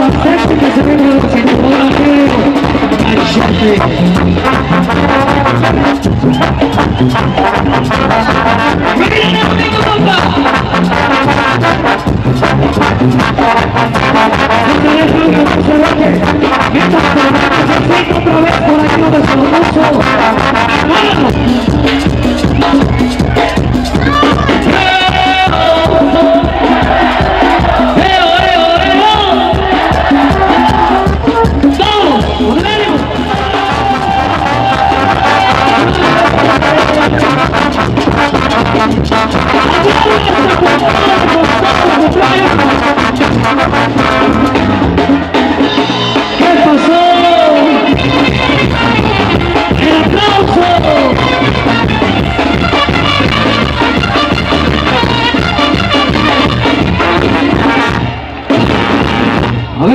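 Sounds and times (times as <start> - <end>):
brass band music: 0.0 - 59.9.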